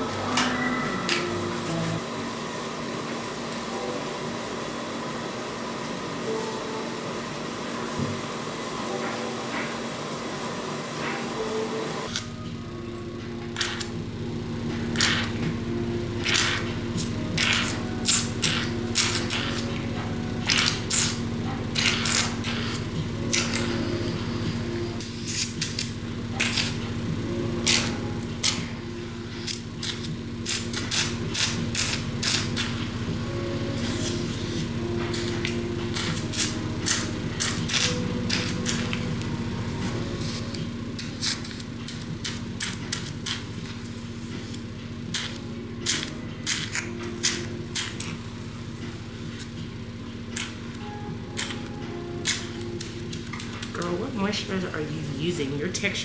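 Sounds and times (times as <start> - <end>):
machine humming: 0.0 - 56.0.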